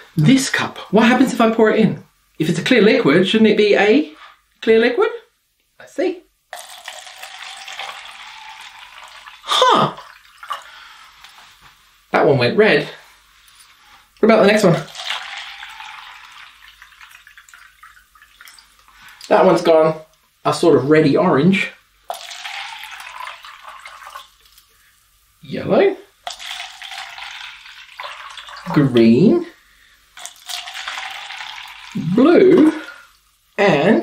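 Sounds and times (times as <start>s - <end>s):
water dripping into plastic cup: 14.8s - 19.3s, 22.1s - 24.7s, 26.2s - 28.8s, 30.2s - 33.2s.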